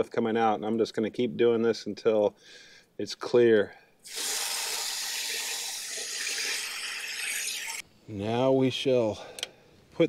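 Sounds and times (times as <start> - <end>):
water spraying and pouring: 4.1 - 7.8.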